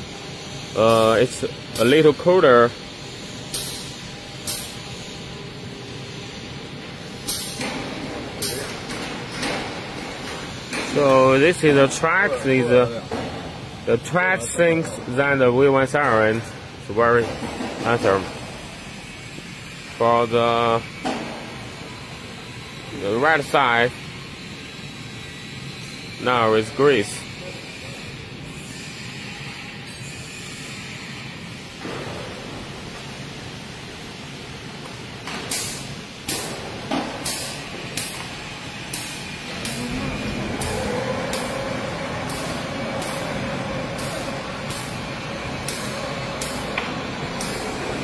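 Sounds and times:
steady background hum: 0.0s - 48.0s.

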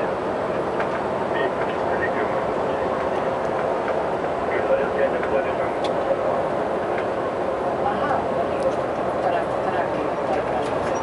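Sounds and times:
bus engine and road noise: 0.0s - 11.0s.

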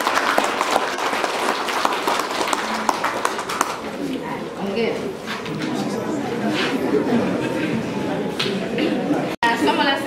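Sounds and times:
crowd applauding: 0.0s - 3.9s.

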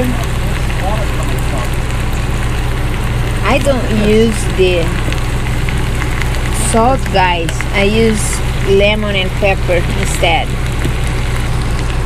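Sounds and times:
food sizzling in a skillet: 0.0s - 12.0s
steady low hum: 0.0s - 12.0s.

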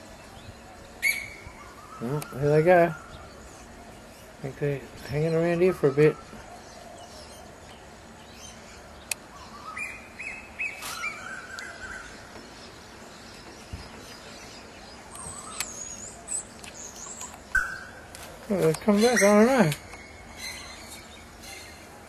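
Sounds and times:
birds calling: 0.0s - 22.0s
high wavering bird whistle: 1.0s - 3.3s, 15.1s - 16.4s, 17.0s - 18.0s.

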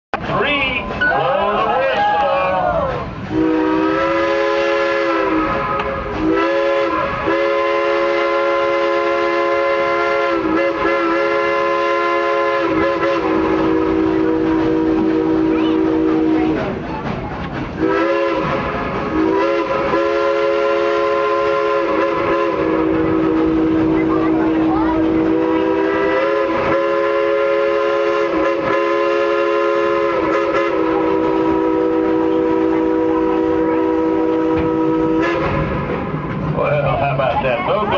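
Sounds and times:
steam locomotive whistle chords: 3.3s - 16.5s, 17.8s - 35.9s.

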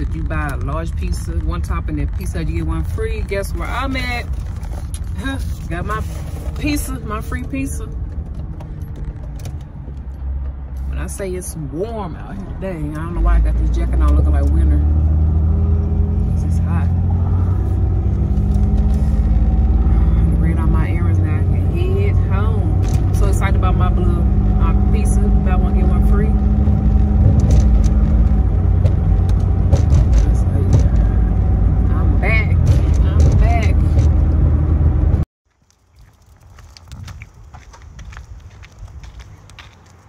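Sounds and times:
car engine and road drone: 0.0s - 35.3s
person speaking: 4.9s - 8.0s.

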